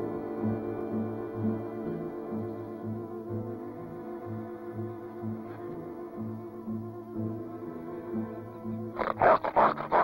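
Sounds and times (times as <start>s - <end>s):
film score with low notes: 0.0s - 10.0s
wild animal calling: 8.7s - 10.0s.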